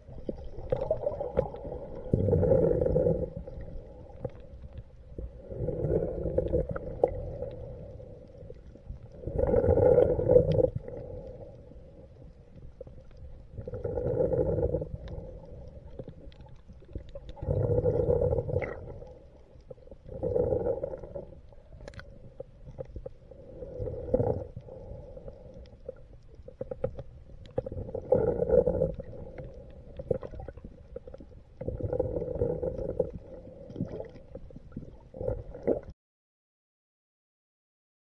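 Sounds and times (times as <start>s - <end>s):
underwater rumble and gurgling: 0.0s - 36.0s
faint clicks and ticks: 0.1s - 35.9s.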